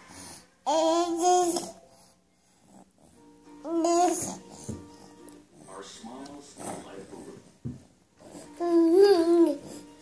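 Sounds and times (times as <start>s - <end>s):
faint background music: 0.0s - 10.0s
baby making soft vocal sounds: 0.1s - 1.9s.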